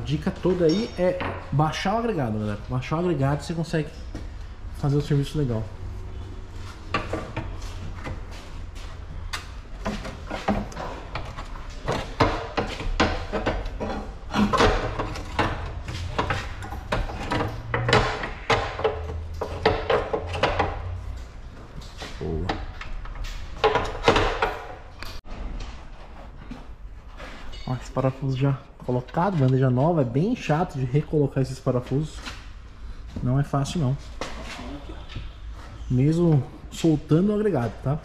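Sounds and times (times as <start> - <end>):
metallic knocks and clanks of tools: 0.0 - 2.0, 9.2 - 25.3, 27.2 - 28.0.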